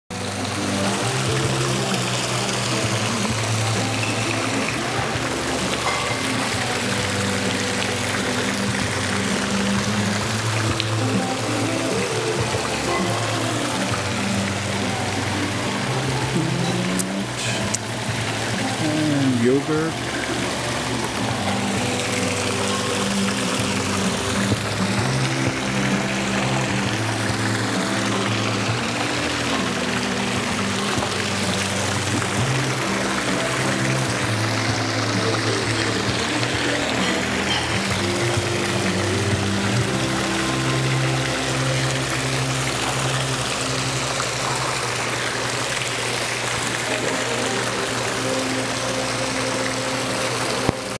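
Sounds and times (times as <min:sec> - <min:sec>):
fountain water splashing: 0:00.1 - 0:50.9
music with long held notes: 0:00.1 - 0:50.9.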